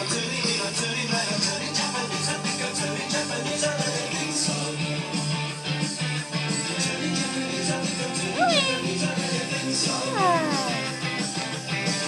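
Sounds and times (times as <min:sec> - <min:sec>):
background music: 0:00.0 - 0:12.0
cat meowing: 0:08.4 - 0:09.0, 0:10.1 - 0:11.0.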